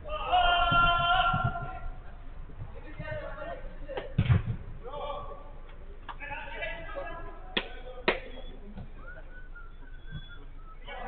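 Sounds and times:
football being struck: 3.9s - 4.8s.

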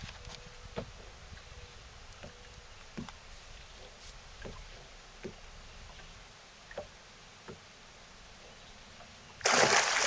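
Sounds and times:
fish thrashing and splashing water: 9.4s - 10.0s.

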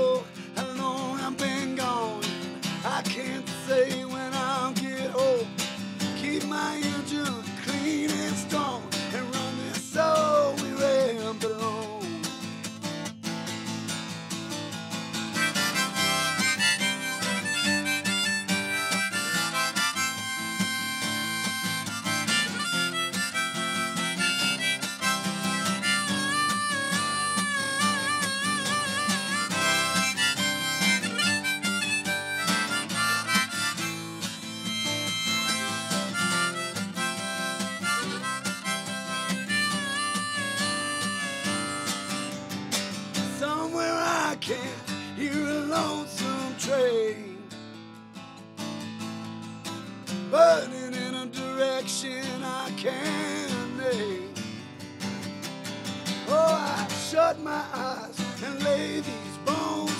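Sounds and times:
strummed acoustic guitar: 0.0s - 59.9s
harmonica solo: 15.2s - 43.0s, 58.4s - 59.9s.

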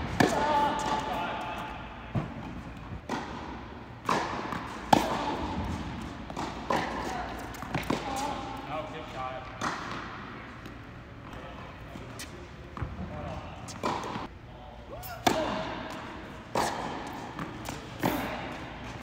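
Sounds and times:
tennis ball hitting rackets: 0.0s - 1.2s, 2.1s - 8.3s, 9.5s - 11.4s, 12.1s - 14.3s, 15.2s - 19.0s
tennis ball bouncing on court: 2.1s - 8.3s, 9.4s - 14.3s, 15.2s - 19.0s.

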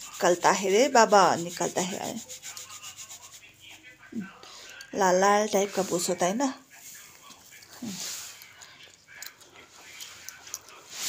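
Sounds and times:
flour sifting through sieve: 0.0s - 3.5s.

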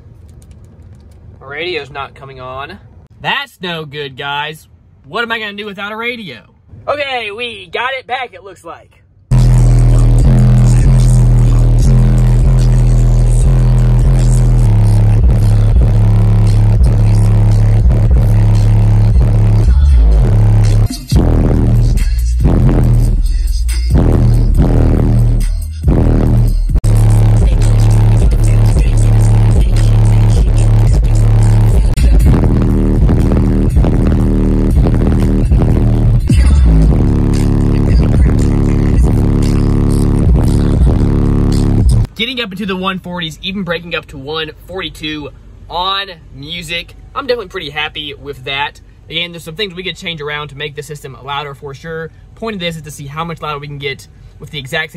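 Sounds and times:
bass-heavy music through subwoofers: 9.3s - 42.2s.

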